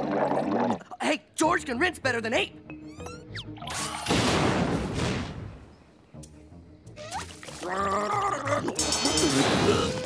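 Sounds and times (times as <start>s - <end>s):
cartoon explosion: 3.8s - 5.4s.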